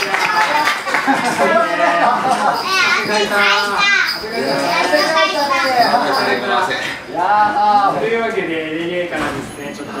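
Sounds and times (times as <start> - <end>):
young children chattering: 0.0 - 8.2.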